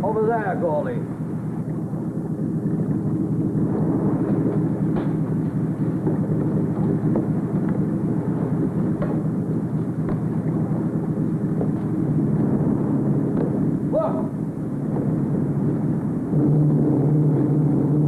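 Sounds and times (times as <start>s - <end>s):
low engine rumble: 0.0s - 18.0s.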